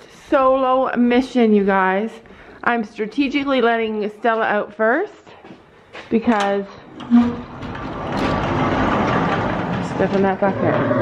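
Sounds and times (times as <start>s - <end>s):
sliding door rolling on track: 6.8s - 11.0s.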